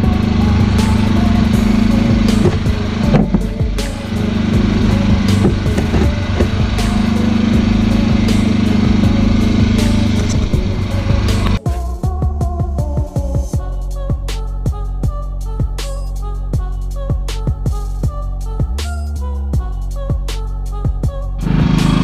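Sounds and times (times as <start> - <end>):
generator engine humming: 0.0 - 12.2, 20.8 - 22.0.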